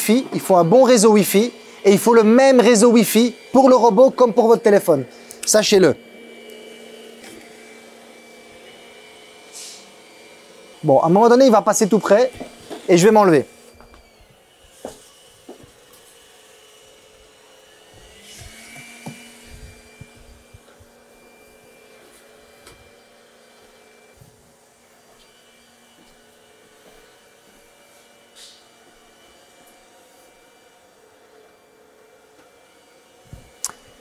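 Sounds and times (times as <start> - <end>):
robot vacuum motor whir: 0.0 - 34.0.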